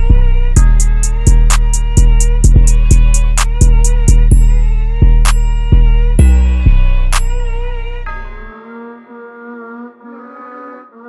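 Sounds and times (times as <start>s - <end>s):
sustained synth melody notes: 0.0s - 11.0s.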